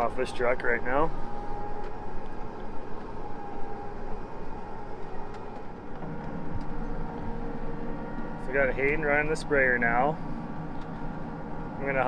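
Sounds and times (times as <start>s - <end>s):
engine hum inside cab: 0.0s - 12.0s.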